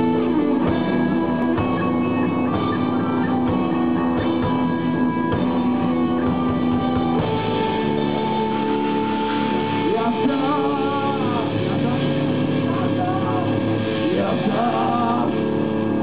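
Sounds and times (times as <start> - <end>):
drum kit: 0.0 - 16.0
electric guitars playing chords: 0.0 - 16.0.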